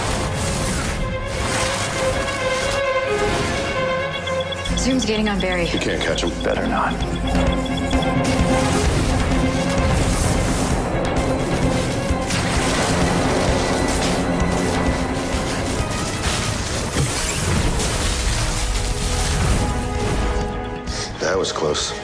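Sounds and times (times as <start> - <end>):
dramatic action music: 0.0 - 22.0
booms and crashing effects: 8.1 - 20.4.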